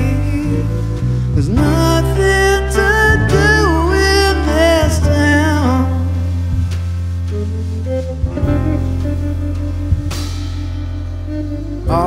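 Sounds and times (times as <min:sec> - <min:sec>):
electric bass notes: 0:00.0 - 0:12.0
live band slow song: 0:00.0 - 0:12.0
sharp drum hit: 0:08.2 - 0:12.0.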